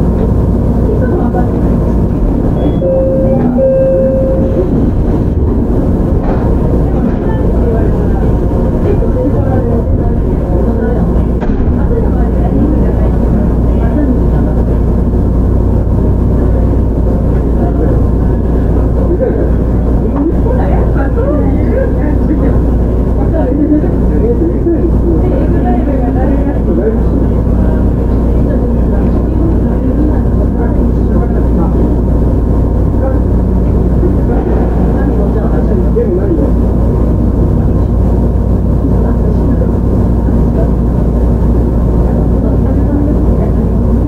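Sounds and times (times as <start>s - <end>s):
short steady tone: 2.5s - 4.9s
train wheels rumbling on rails: 4.4s - 44.0s.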